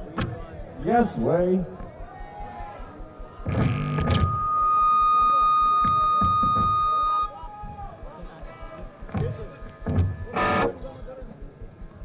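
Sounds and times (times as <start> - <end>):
amplifier feedback whine: 2.4 - 8.2, 8.9 - 11.1.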